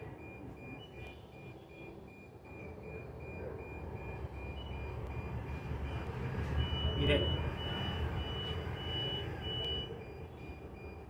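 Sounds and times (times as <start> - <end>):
high-pitched electronic beeps: 0.0 - 11.0.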